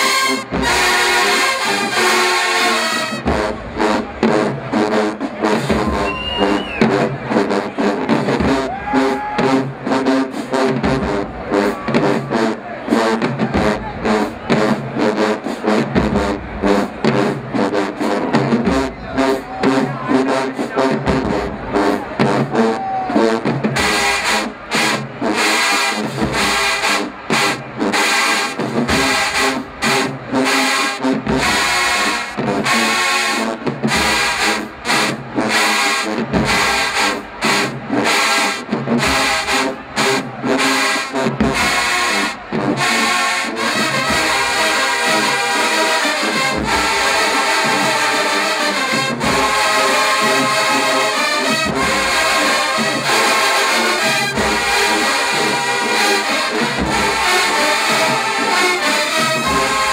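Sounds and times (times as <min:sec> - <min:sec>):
marching band playing: 0:00.0 - 0:59.9.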